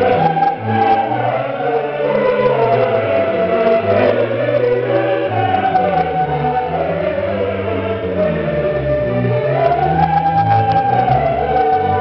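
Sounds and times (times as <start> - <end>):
choir singing: 0.0 - 12.0
string orchestra: 0.0 - 12.0.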